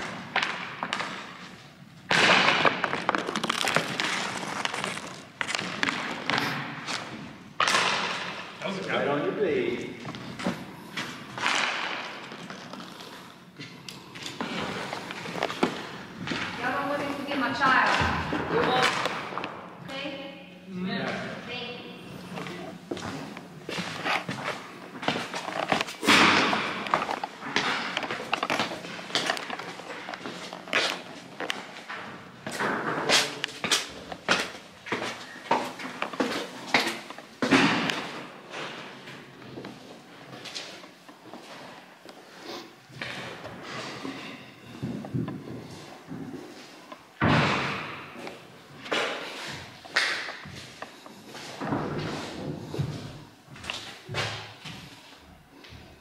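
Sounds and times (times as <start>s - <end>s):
footsteps on hard floors: 0.0s - 8.6s, 10.0s - 20.0s, 22.0s - 56.0s.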